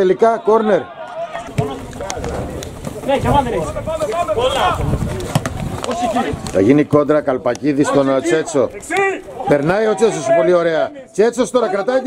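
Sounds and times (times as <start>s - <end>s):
men calling out: 0.0s - 6.6s, 7.7s - 12.0s.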